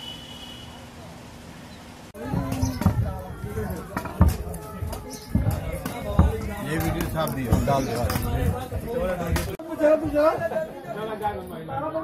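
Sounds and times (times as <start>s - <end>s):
low thumps: 2.2s - 9.6s.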